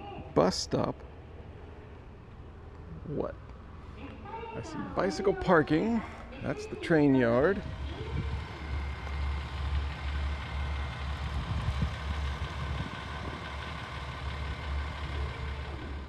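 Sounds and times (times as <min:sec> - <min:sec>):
diesel railcar engines idling: 0:00.0 - 0:16.0.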